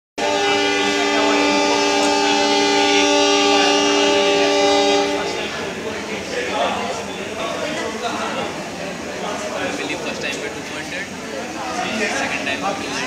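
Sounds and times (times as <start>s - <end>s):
locomotive horn blast: 0.2s - 6.3s.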